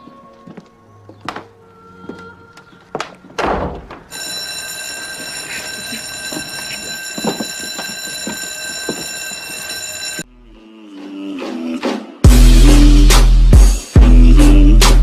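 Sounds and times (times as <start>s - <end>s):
high-pitched ringing tone: 4.1s - 10.2s.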